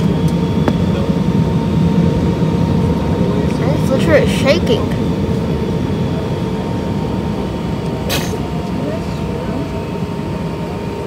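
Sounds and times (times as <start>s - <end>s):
jet engines rumbling: 0.0s - 11.0s
thin steady whine: 0.0s - 11.0s.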